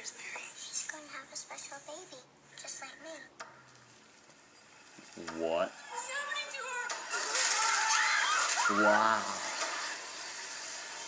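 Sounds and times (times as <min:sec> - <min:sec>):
steady hissing noise: 0:00.0 - 0:07.1.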